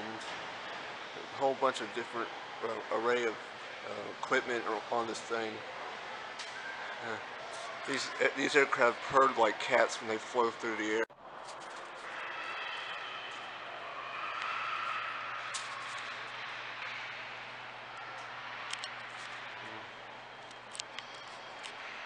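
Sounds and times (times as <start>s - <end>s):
constant low hum: 0.0s - 22.0s.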